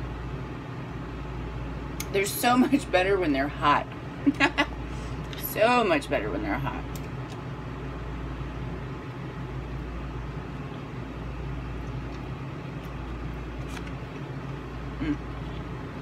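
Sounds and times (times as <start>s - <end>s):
fan humming: 0.0s - 16.0s.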